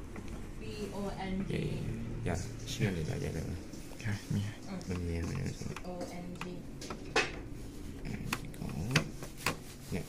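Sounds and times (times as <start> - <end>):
low steady hum: 0.0 - 10.0
person talking: 0.6 - 6.7.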